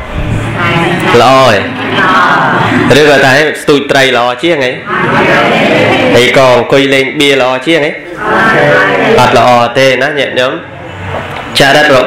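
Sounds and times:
man talking: 1.1s - 1.7s.

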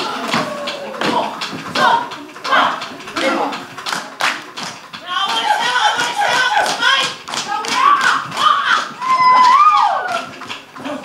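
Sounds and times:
rhythmic clapping and slapping: 0.0s - 11.0s
long held shout: 7.9s - 10.2s.

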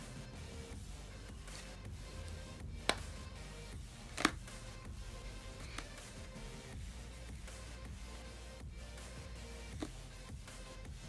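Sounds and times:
soft background music: 0.0s - 11.0s
plastic cases clicking: 4.2s - 4.5s.

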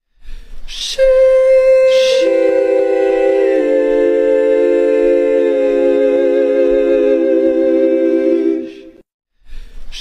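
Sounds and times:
choir-like held chord: 1.0s - 9.0s.

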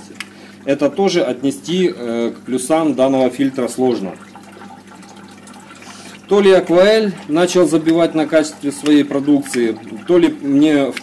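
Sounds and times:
aquarium filter water splashing: 0.0s - 11.0s.

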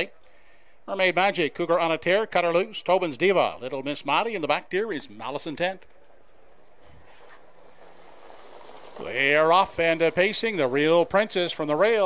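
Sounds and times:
open-air ambience: 0.0s - 12.0s.

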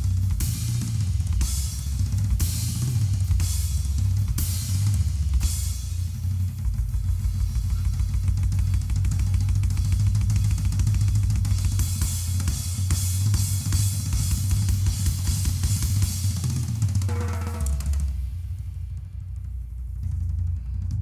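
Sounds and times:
cymbals and hi-hat: 0.0s - 21.0s
drum strokes on snare and toms: 0.0s - 21.0s.

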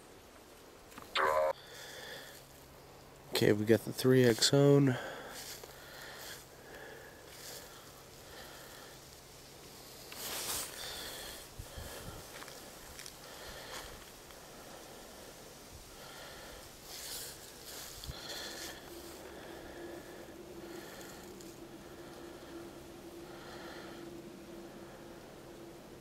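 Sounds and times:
low steady hum: 10.7s - 26.0s.

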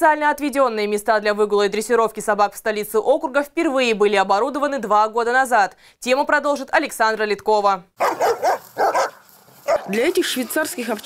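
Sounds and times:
dogs barking: 8.0s - 10.0s.

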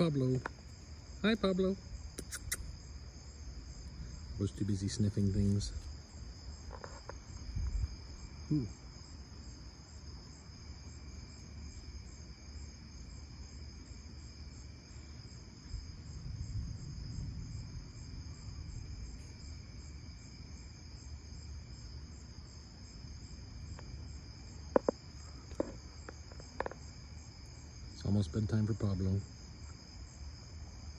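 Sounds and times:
night insects trilling: 0.0s - 30.9s
low thunder rumble: 15.7s - 20.6s.

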